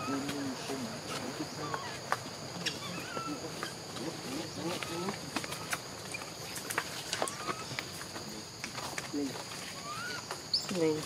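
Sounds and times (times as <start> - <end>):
faint chirping calls: 0.0 - 11.0
high-pitched insect chorus: 0.0 - 11.0.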